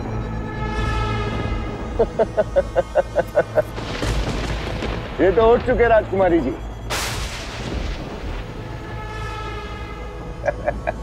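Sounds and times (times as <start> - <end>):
loud boom crash with low rumble: 3.7 - 8.7.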